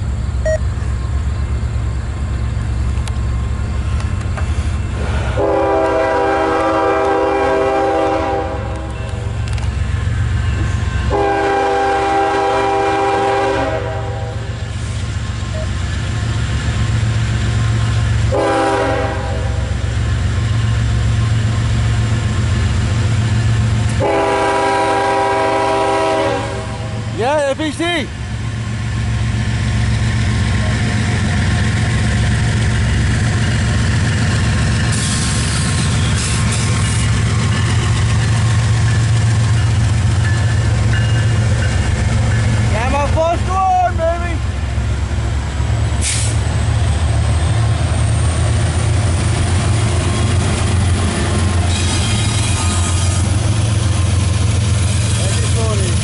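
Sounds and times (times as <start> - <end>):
diesel engine rumble: 0.0 - 12.9, 26.6 - 56.0
locomotive air horn: 5.0 - 9.3, 11.0 - 14.6, 18.3 - 19.9, 24.0 - 27.0.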